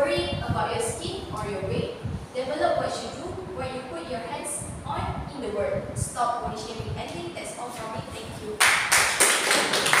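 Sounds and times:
audience applause: 0:08.9 - 0:10.0.

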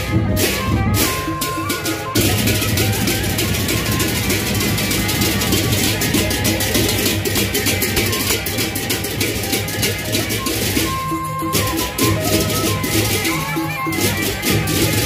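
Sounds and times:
hand cymbals clashing: 0:00.0 - 0:15.0.

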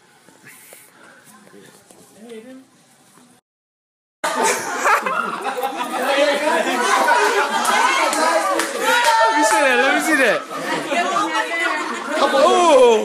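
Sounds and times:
loud party chatter: 0:04.2 - 0:13.0.

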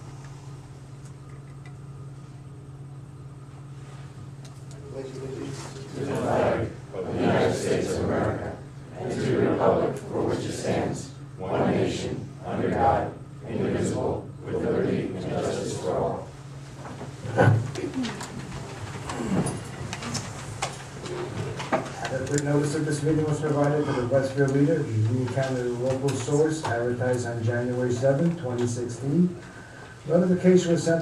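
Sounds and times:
people reciting in unison: 0:05.9 - 0:16.4
chairs creaking: 0:16.7 - 0:23.7.

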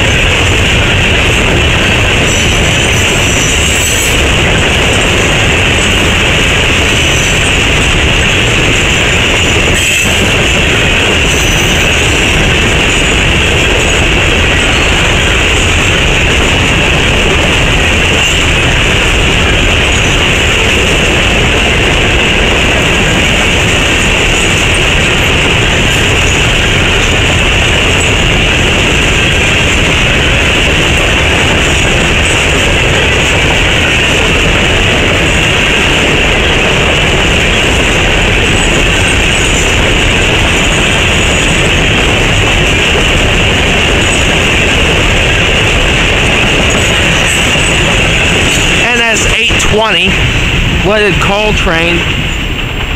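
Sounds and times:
train wheels roaring on rails: 0:00.0 - 0:52.9.

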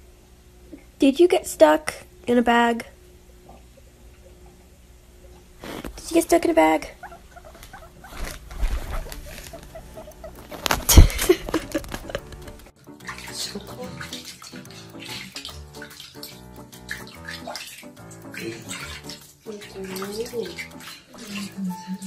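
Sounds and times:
water sloshing in a basin: 0:03.4 - 0:22.0.

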